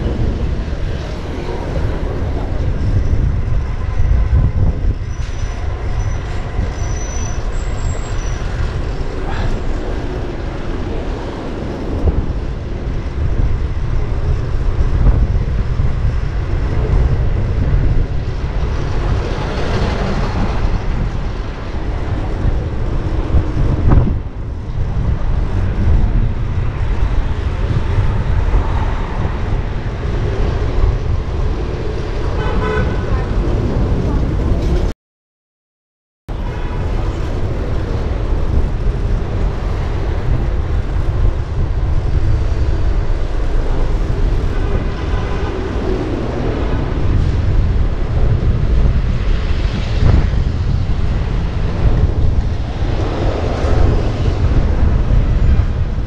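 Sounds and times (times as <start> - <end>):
vehicle engines: 0.0 - 34.9, 36.3 - 56.0
wind rushing over microphone: 0.0 - 34.9, 36.3 - 56.0
vehicle horns: 32.3 - 33.3.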